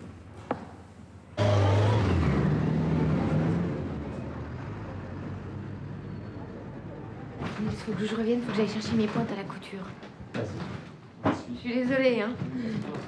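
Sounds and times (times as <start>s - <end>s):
steady traffic hum: 0.0s - 10.3s
vehicles passing: 1.4s - 7.6s.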